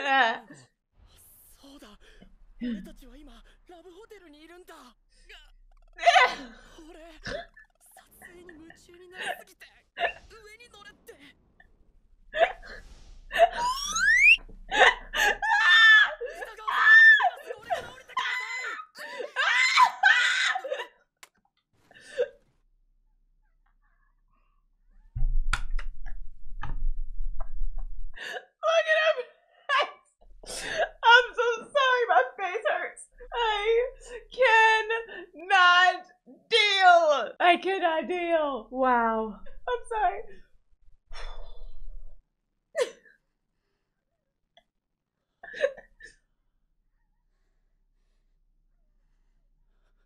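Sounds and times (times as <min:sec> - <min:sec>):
woman whimpering cries: 0:06.0 - 0:06.6, 0:14.7 - 0:20.8
woman laughing: 0:06.0 - 0:07.6, 0:14.7 - 0:20.8.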